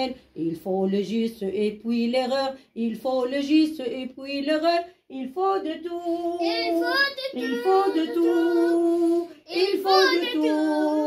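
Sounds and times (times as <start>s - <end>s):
person singing solo: 5.9s - 11.0s.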